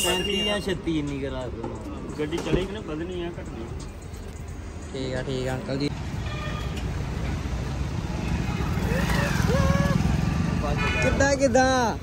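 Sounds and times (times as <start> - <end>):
cars passing: 0.8 - 12.0
motorcycle passing: 8.0 - 10.8.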